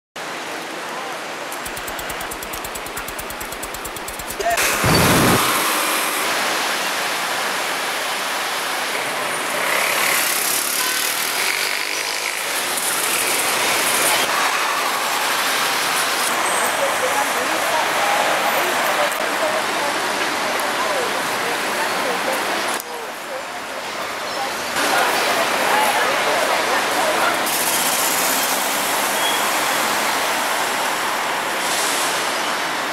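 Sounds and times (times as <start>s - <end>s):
traffic: 0.2s - 32.9s
rapid even rattle: 1.6s - 5.6s
voices of passers-by: 7.6s - 32.9s.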